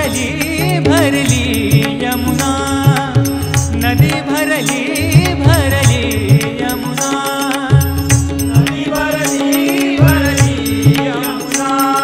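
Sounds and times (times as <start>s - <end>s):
person singing ornamented notes: 0.0s - 12.0s.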